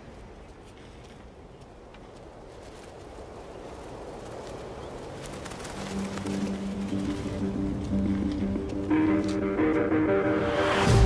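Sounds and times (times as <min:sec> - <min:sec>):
wind blowing: 0:00.0 - 0:11.0
low sustained music notes: 0:05.7 - 0:11.0.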